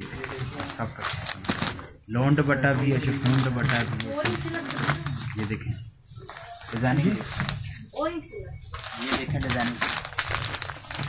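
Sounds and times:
plastic packaging crinkling: 0.0 - 7.8, 8.7 - 11.0.

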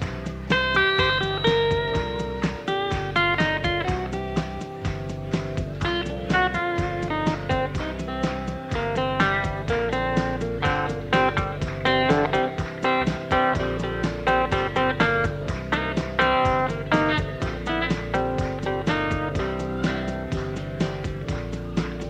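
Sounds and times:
blues-rock band playing: 0.0 - 22.0
electric guitar lines: 0.0 - 22.0.

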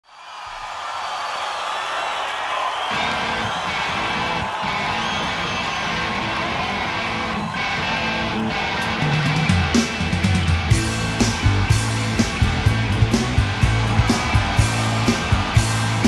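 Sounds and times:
crowd cheering: 0.0 - 16.0
live rock band playing: 5.8 - 16.0.

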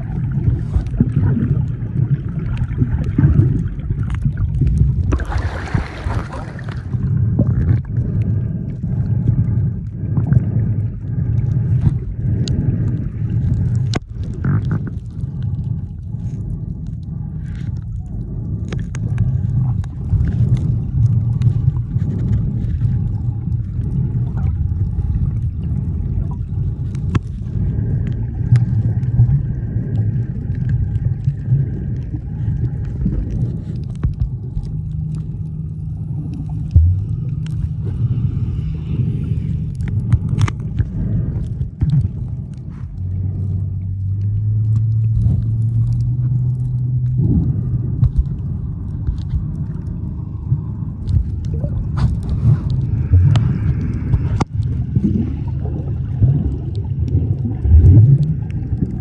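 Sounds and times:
muffled underwater rumble: 0.0 - 59.0
steady droning hum: 0.0 - 59.0
underwater clicks and crackles: 0.0 - 59.0.

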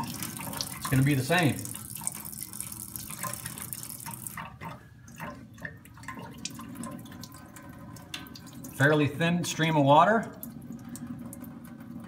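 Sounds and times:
tap water running into sink: 0.0 - 12.0.

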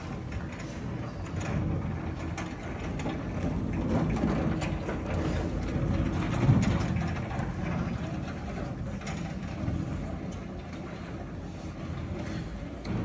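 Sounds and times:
caster wheels rolling on hard floor: 0.0 - 13.0.

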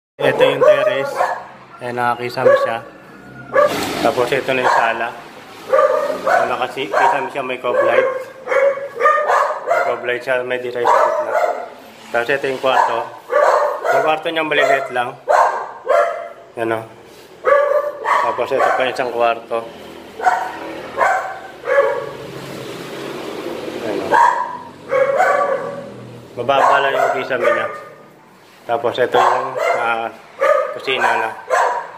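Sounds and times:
dog barking: 0.2 - 1.6, 2.4 - 3.8, 4.5 - 10.2, 10.8 - 11.8, 12.6 - 16.5, 17.4 - 19.2, 20.2 - 22.2, 24.1 - 25.9, 26.5 - 28.0, 29.0 - 31.9.

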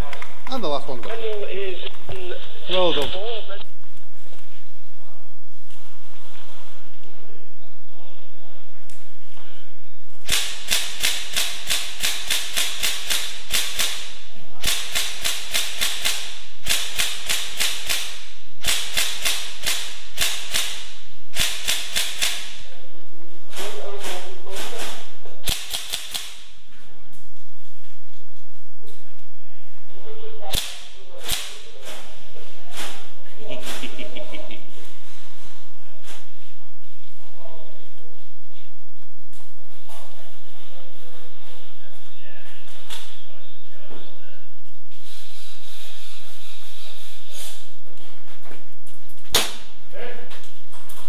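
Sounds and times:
airsoft guns firing rapid shots: 10.2 - 22.7, 25.4 - 26.6, 30.5 - 31.7.

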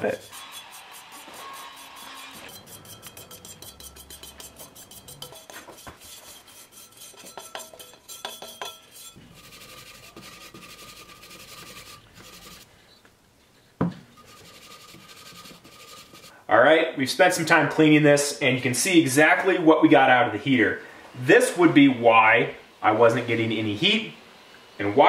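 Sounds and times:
wire brush scraping metal: 0.0 - 12.7, 14.1 - 16.4.

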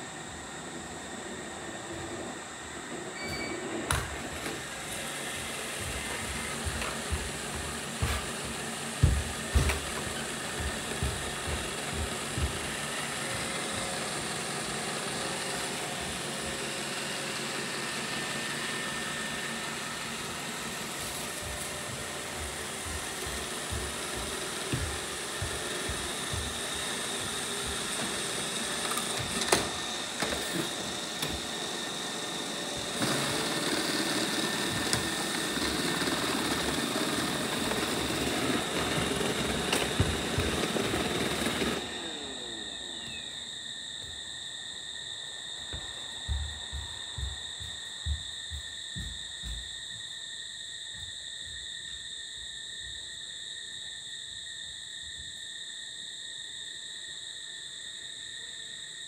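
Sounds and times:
robot vacuum cleaner whirring: 0.0 - 48.2.

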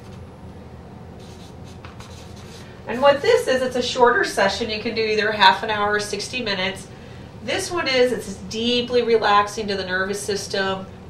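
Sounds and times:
marker pen writing on paper: 1.2 - 2.7
woman's voice: 2.9 - 10.9.

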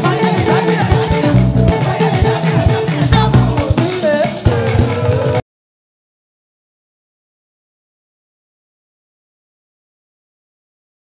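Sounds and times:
bass guitar: 0.0 - 5.4
guitar: 0.0 - 5.4
praise band playing: 0.0 - 5.4
steady beat: 0.0 - 5.4.

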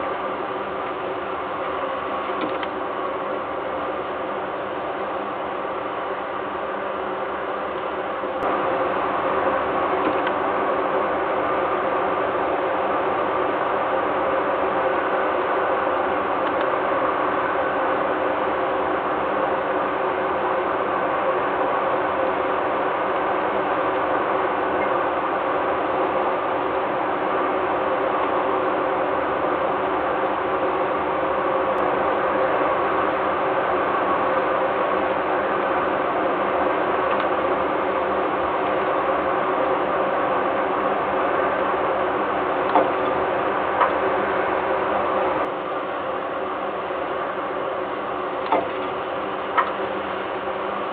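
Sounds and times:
faint hum: 0.0 - 50.9
industrial machinery drone: 0.0 - 50.9.

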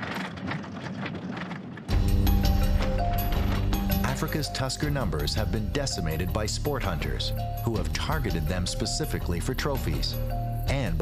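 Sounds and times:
knocks and rattles: 0.0 - 5.5
music: 1.9 - 11.0.

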